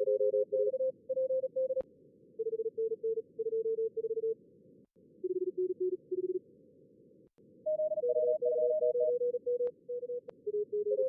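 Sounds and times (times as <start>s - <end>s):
fast morse code beeps: 7.7s - 11.0s.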